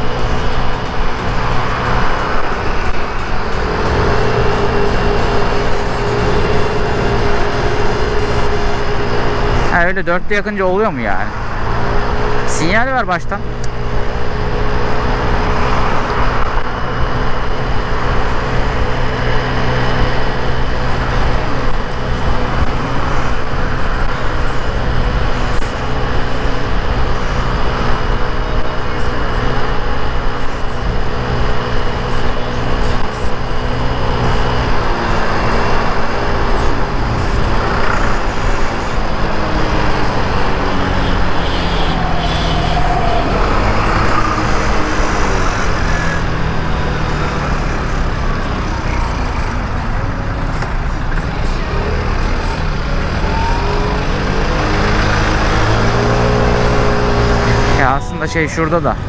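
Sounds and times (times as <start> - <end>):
scooter engine running: 0.0 - 9.8, 13.4 - 59.0
city traffic: 0.0 - 59.0
wind and road noise: 0.0 - 59.0.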